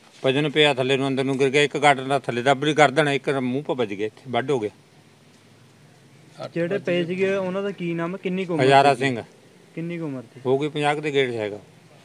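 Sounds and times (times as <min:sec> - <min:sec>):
man speaking: 0:00.2 - 0:04.8, 0:06.4 - 0:11.7.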